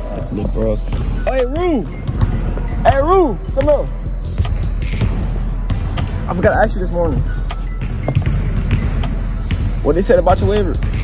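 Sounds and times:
basketballs bouncing on hardwood: 0.0 - 11.0.

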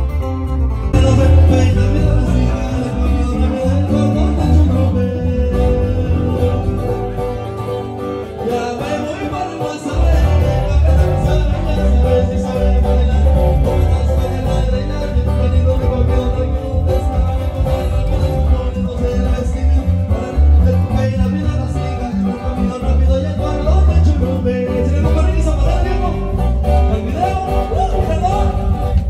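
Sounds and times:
deep bass notes: 0.0 - 29.0
guitars picking and strumming: 0.0 - 29.0.

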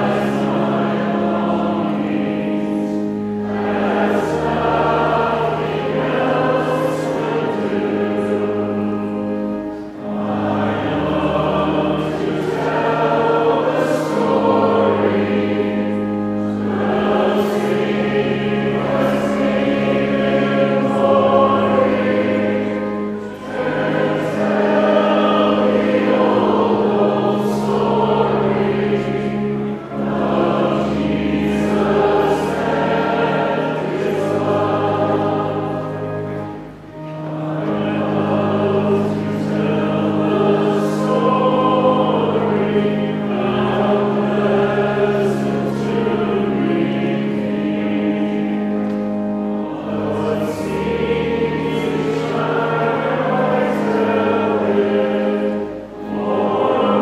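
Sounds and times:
choir singing a hymn: 0.0 - 57.0
pipe organ: 0.0 - 57.0.

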